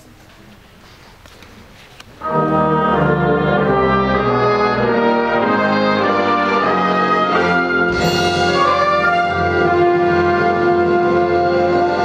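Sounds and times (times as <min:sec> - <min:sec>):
big band brass chords: 0:02.2 - 0:12.0.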